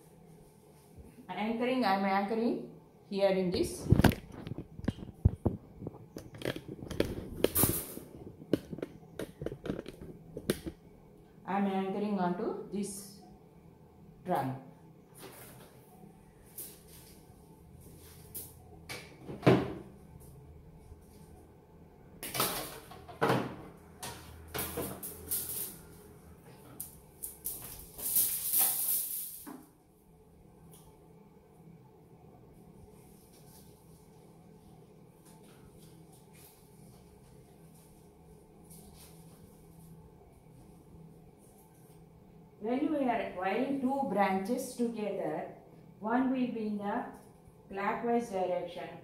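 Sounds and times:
wire clicking and rustling: 3.7s - 10.8s, 26.7s - 29.7s.

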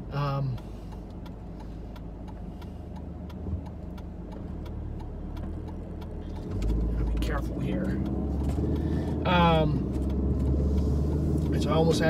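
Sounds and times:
car cabin engine and road rumble: 0.0s - 12.0s.

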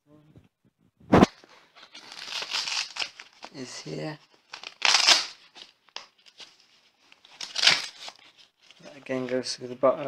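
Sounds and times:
velcro strap ripping: 2.0s - 3.6s, 4.5s - 6.1s, 7.3s - 8.2s.

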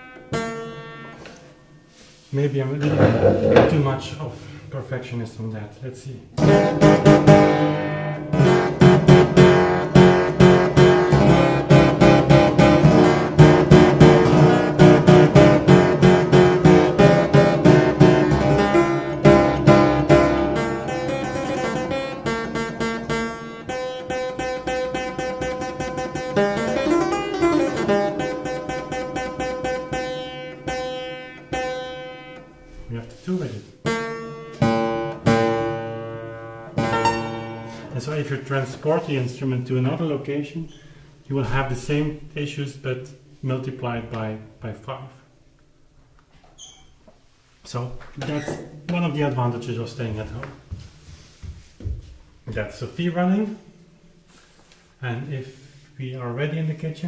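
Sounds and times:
harpsichord-like keyboard notes: 6.4s - 32.5s, 33.9s - 38.0s.

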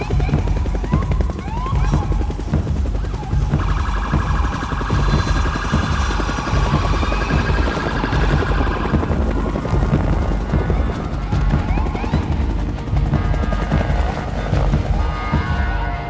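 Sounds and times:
police sirens wailing: 0.0s - 16.0s.

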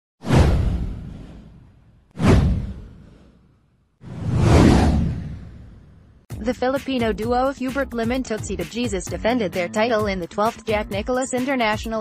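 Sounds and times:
deep boom: 0.2s - 3.2s
whoosh: 0.2s - 6.3s.

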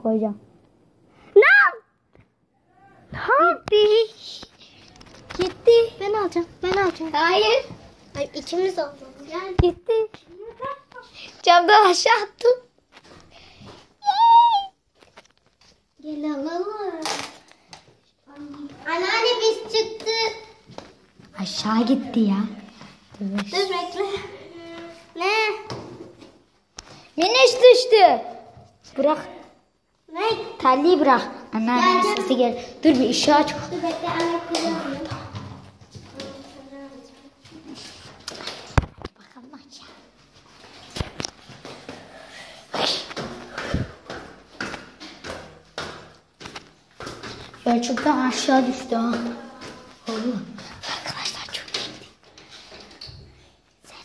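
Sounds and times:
boy speaking: 3.0s - 4.5s, 5.3s - 12.7s, 16.0s - 17.2s, 18.3s - 20.6s, 23.2s - 25.8s, 27.2s - 37.8s, 47.6s - 51.8s.

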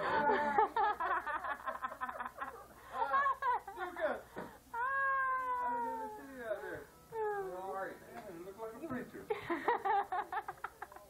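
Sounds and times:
long falling cry: 4.7s - 6.3s.

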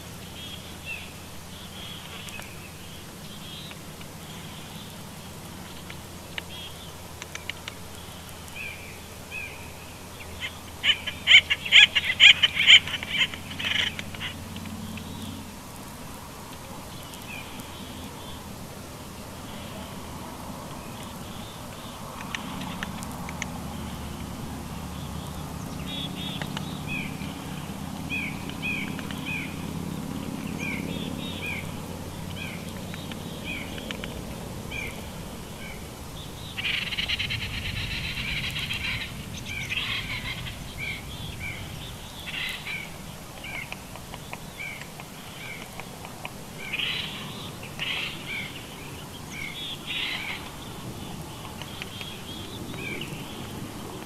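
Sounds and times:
harsh bird calls: 0.0s - 15.5s, 19.2s - 54.0s.

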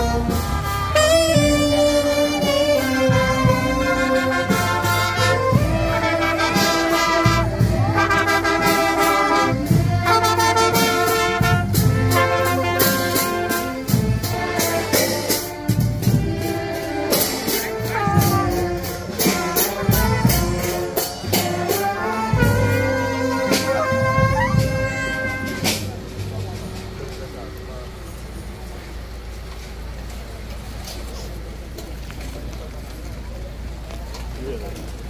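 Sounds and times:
cymbals crashing: 17.1s - 28.2s
clarinets playing tune: 17.4s - 25.8s.

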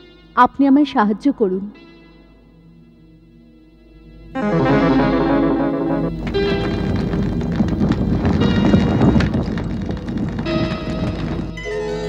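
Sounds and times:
dramatic music: 4.3s - 7.0s
rattle of rapid clattering clicks: 6.2s - 12.0s.

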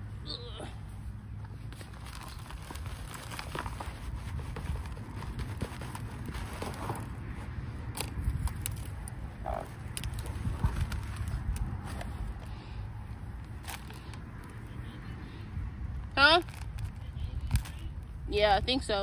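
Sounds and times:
soil scraping and sliding: 1.6s - 12.7s.

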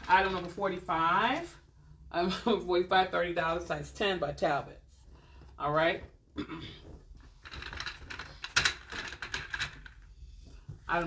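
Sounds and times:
light clicks and rattles: 6.8s - 11.0s.

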